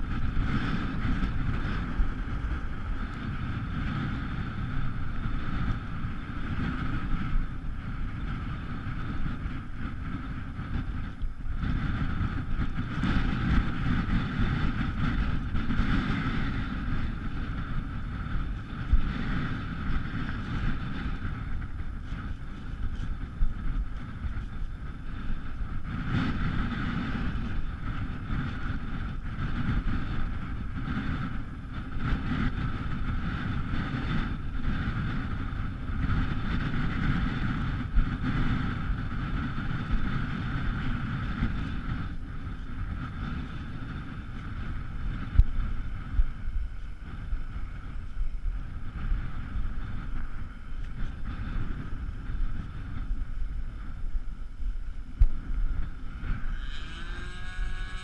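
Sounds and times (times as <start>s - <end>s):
steady mid-pitched whine: 0.0s - 58.0s
wind buffeting microphone: 0.0s - 58.0s.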